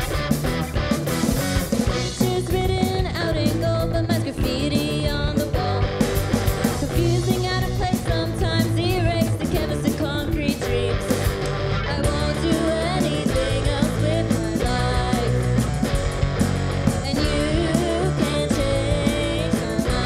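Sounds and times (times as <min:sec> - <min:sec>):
bass guitar: 0:00.0 - 0:20.0
drum kit hits: 0:00.0 - 0:20.0
electric guitar: 0:00.0 - 0:20.0.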